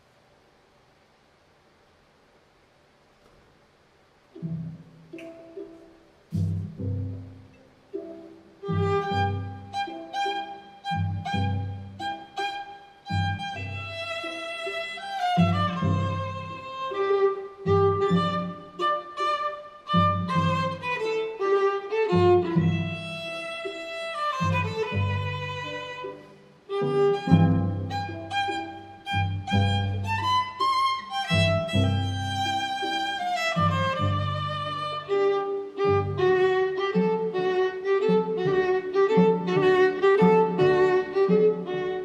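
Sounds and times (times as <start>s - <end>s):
string trio playing classical piece: 4.3s - 42.0s
cello low notes: 4.4s - 42.0s
sustained bowed melody: 8.0s - 42.0s.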